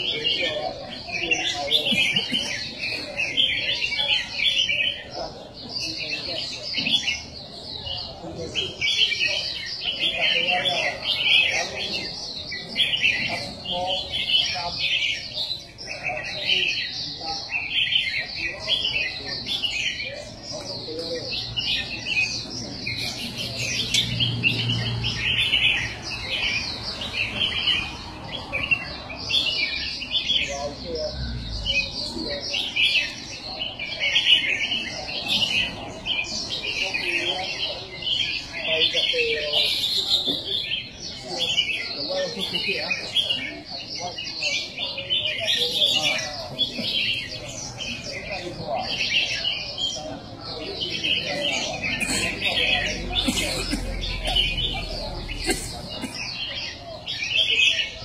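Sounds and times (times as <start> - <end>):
birds chirping: 0.0 - 58.0
murmur of voices: 0.0 - 58.0.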